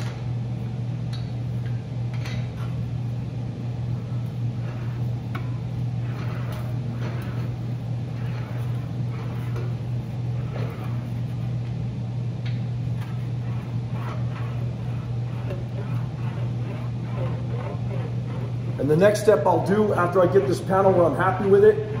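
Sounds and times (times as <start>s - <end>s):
steady low hum: 0.0s - 22.0s
sheet metal rolling and scraping: 3.9s - 11.5s, 12.9s - 21.5s.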